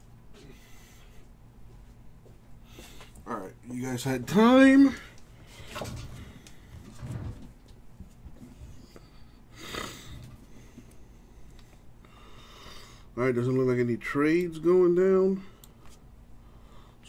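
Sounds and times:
man breathing: 0.3s - 1.4s, 2.6s - 3.2s, 8.7s - 13.2s, 15.4s - 17.0s.

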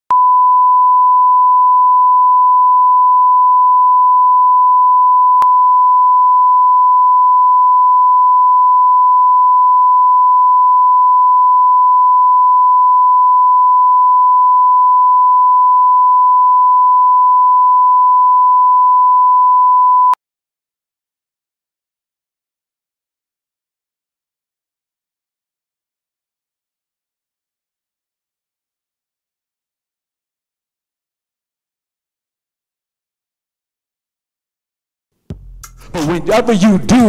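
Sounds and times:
steady line-up tone beep: 0.1s - 20.2s.

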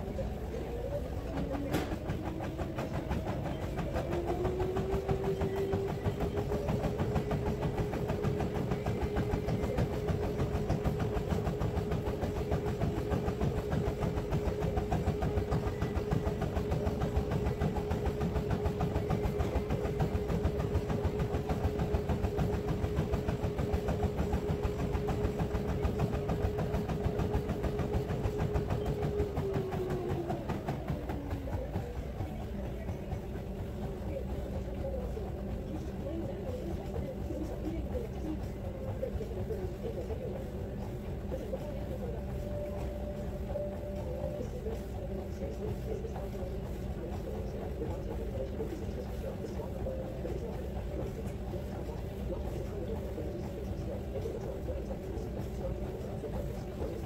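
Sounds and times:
treadmill belt rumble: 0.0s - 57.0s
treadmill motor whining: 0.0s - 57.0s
footfalls on treadmill: 1.3s - 57.0s.

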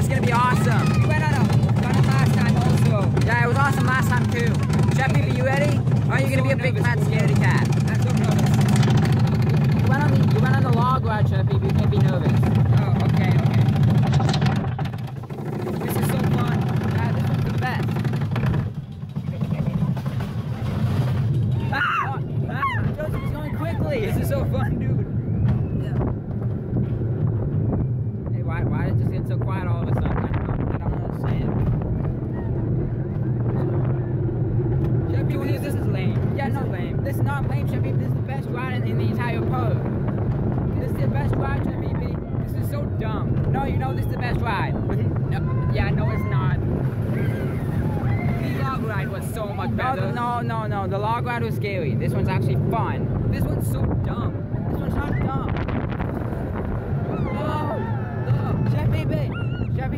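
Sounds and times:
roller coaster rumbling on track: 0.0s - 59.9s
wind on microphone: 0.0s - 59.9s
riders shouting: 0.1s - 2.0s, 56.8s - 59.8s.

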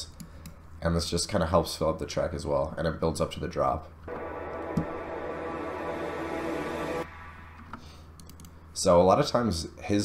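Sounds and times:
low hum: 4.1s - 8.6s.

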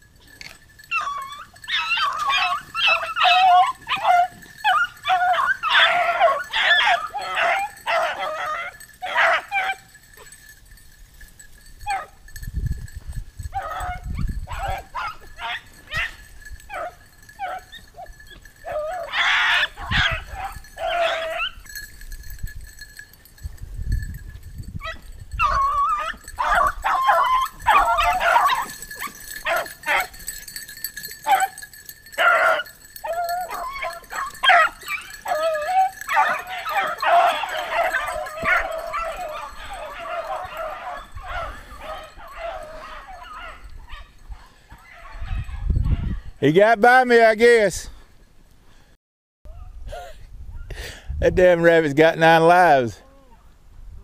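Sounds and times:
dogs baying and yelping: 0.1s - 10.6s, 11.2s - 12.4s, 13.4s - 23.4s, 24.8s - 46.4s.

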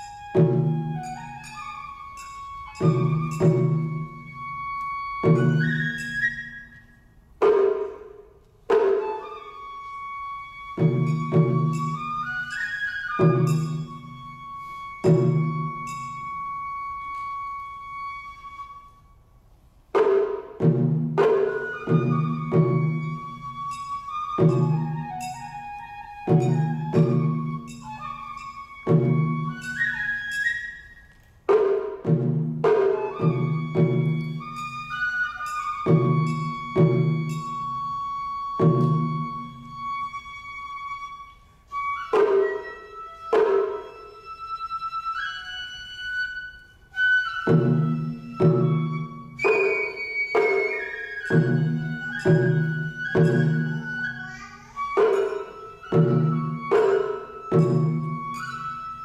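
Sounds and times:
taiko drums: 0.0s - 18.6s, 19.9s - 30.7s, 31.4s - 46.3s, 47.0s - 59.0s
bamboo flute melody: 0.0s - 59.0s.

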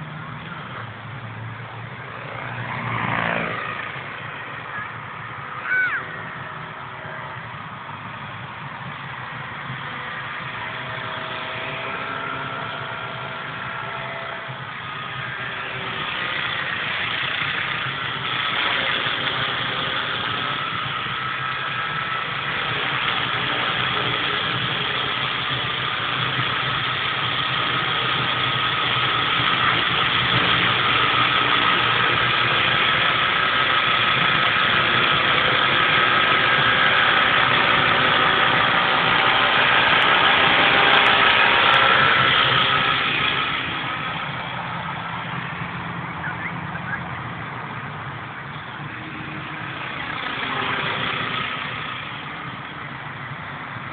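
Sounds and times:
model helicopter motor whine: 0.0s - 53.9s.

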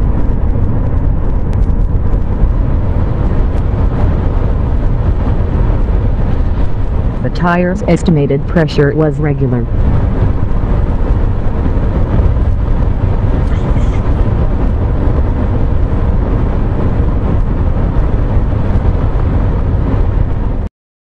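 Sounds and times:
car road and engine rumble: 0.0s - 20.7s.

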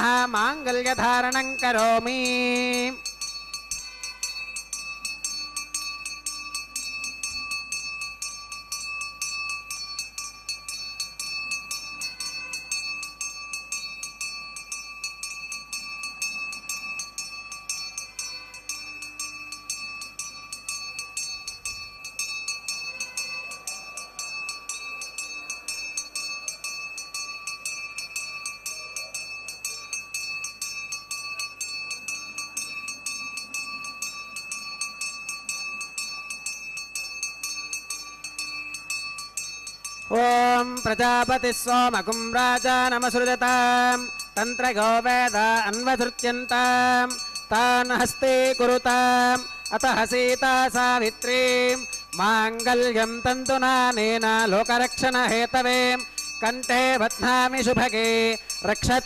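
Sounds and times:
hand bell ringing rapidly: 0.0s - 59.0s.

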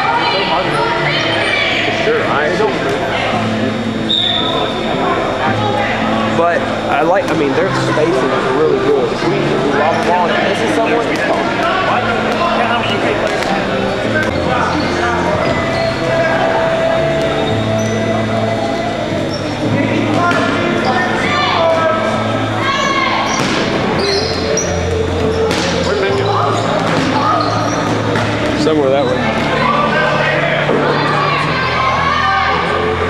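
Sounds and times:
music playing: 0.0s - 33.0s
voices in a hall: 0.0s - 33.0s.

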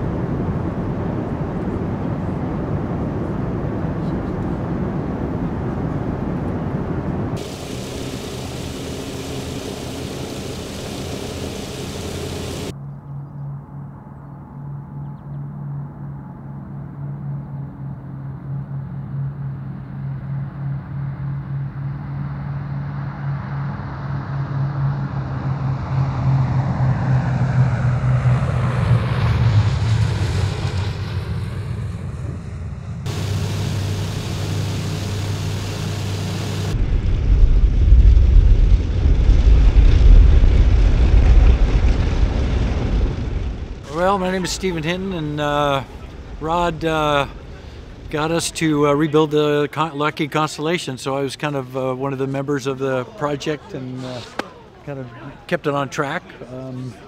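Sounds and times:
deep engine rumble taxiing: 0.0s - 12.7s, 18.6s - 49.2s
propeller engines droning in cockpit: 0.0s - 12.7s, 15.0s - 37.4s, 43.2s - 48.5s
aircraft engine noise approaching: 0.0s - 12.8s, 13.5s - 49.4s.

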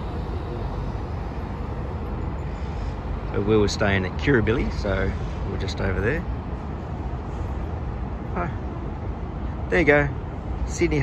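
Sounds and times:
city road traffic rumble: 0.0s - 11.0s.

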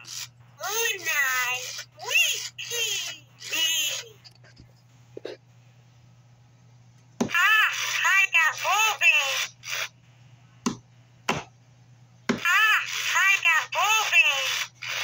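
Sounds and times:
toy talking in electronic voice: 0.0s - 4.2s, 7.3s - 9.9s, 12.4s - 15.0s.

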